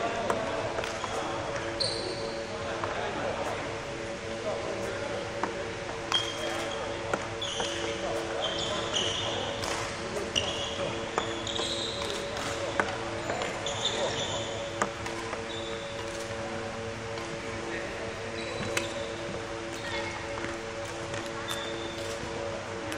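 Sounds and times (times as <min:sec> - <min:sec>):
steady hum: 0:00.0 - 0:22.9
shoes squeaking on floor: 0:00.9 - 0:02.5, 0:06.1 - 0:16.4, 0:18.2 - 0:20.6, 0:21.2 - 0:22.2.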